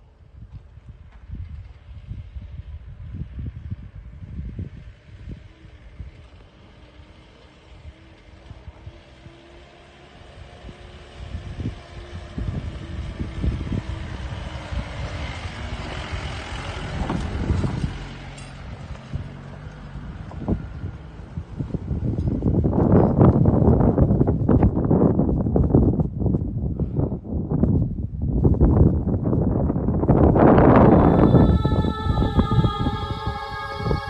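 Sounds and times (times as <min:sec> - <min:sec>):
faint engine hum: 0:00.0 - 0:28.2, 0:29.2 - 0:34.0
road and tyre noise: 0:00.0 - 0:34.0
jeep rumbling on dirt road: 0:00.5 - 0:27.3.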